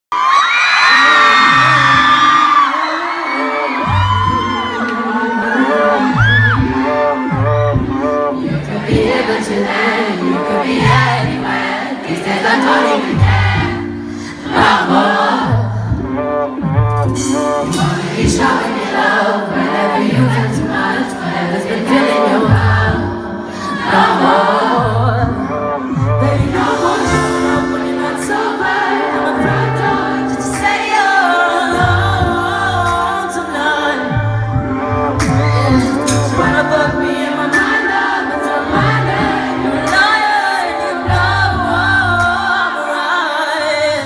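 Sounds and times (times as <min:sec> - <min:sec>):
crowd screaming and cheering: 0:00.0 - 0:32.9
pop song with heavy bass beat: 0:00.9 - 0:44.0
woman singing into a microphone: 0:01.0 - 0:16.1, 0:17.6 - 0:44.0.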